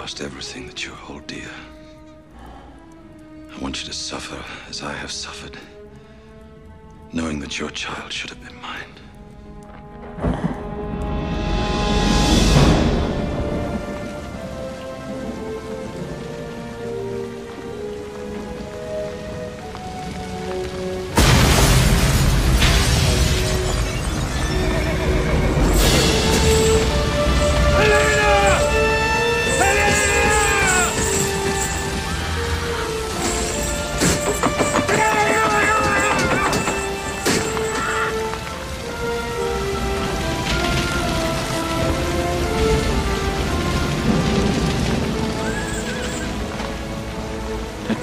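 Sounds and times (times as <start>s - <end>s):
heavy rain: 0.0s - 48.0s
slow orchestral music: 0.0s - 48.0s
horse whinnying: 27.7s - 31.3s, 34.5s - 38.4s.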